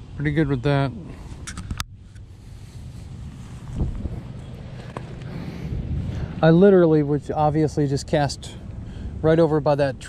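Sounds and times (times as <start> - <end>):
wind buffeting microphone: 1.0 - 10.0.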